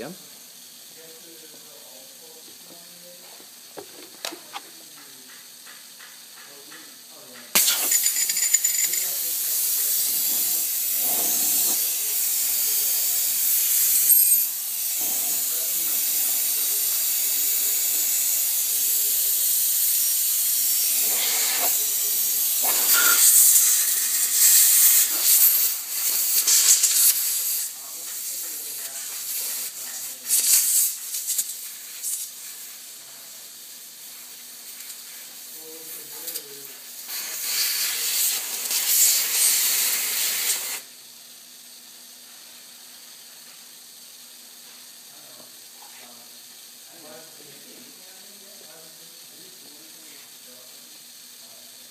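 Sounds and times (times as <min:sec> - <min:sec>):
compressed air hissing: 0:00.0 - 0:41.0.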